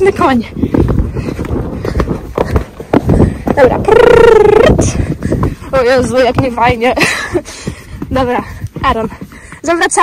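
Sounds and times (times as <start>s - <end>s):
horse hoofbeats on dirt: 0.0s - 10.0s.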